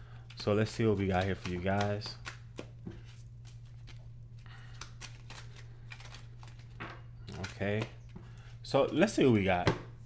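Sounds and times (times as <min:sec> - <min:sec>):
low steady hum: 0:00.0 - 0:10.0
cards being shuffled: 0:00.3 - 0:08.2.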